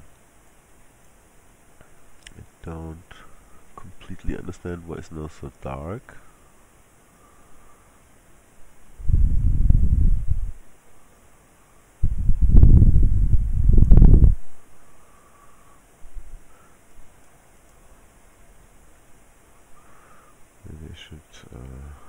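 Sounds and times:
faint background hiss: 0:00.0 - 0:22.0
low rumbling on microphone: 0:08.9 - 0:10.6, 0:12.0 - 0:14.6.

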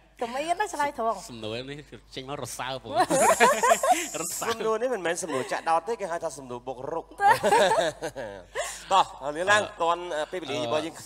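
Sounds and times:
loud hiss: 0:03.1 - 0:04.6.

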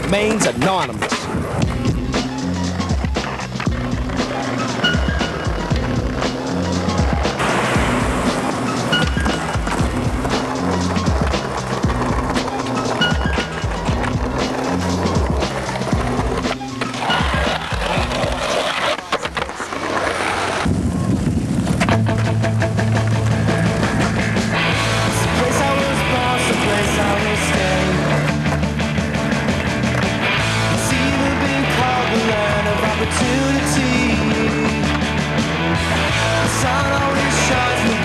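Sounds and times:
skateboard clacks: 0:00.0 - 0:20.7, 0:21.6 - 0:38.0
skateboard wheels rolling on pavement: 0:00.0 - 0:38.0
hip-hop beat with bassline: 0:01.2 - 0:18.6.

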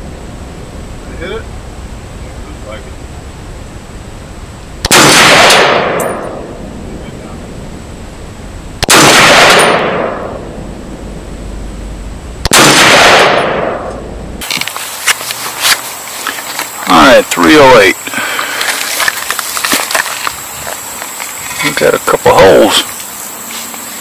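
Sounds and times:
rifle shots echoing: 0:04.8 - 0:06.6, 0:08.8 - 0:10.6, 0:12.4 - 0:14.1.

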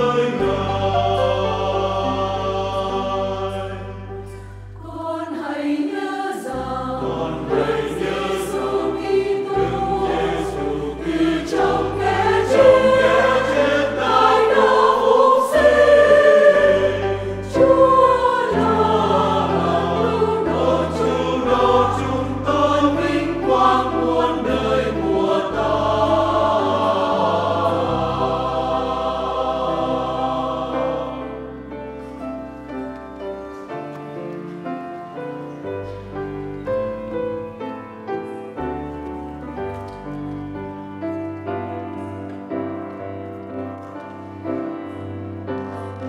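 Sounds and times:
choir singing a hymn: 0:00.0 - 0:46.0
piano: 0:00.0 - 0:46.0.

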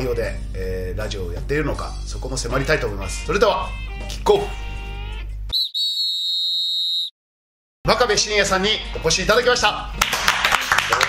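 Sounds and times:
referee's whistle blast: 0:05.5 - 0:07.1.

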